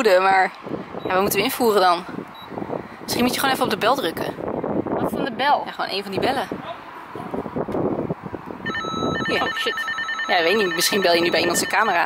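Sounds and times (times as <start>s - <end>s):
door intercom calling tone: 8.7s - 12.0s.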